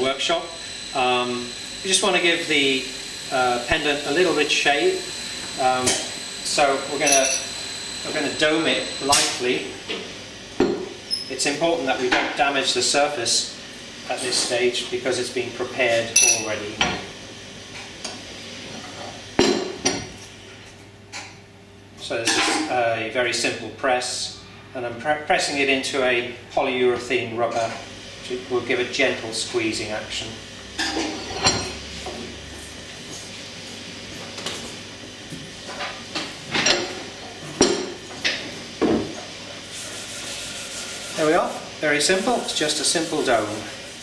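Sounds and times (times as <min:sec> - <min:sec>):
sharp metallic clinks: 0:07.0 - 0:07.5, 0:16.2 - 0:16.5.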